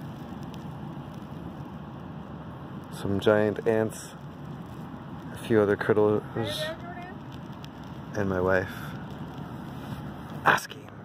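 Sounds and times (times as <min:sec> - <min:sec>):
distant ocean surf rushing: 0:00.0 - 0:11.0.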